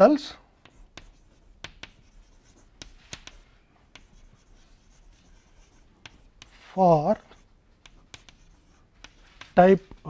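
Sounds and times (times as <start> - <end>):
chalk scratching on blackboard: 0.6 - 10.0
chalk tapping on blackboard: 0.6 - 10.0.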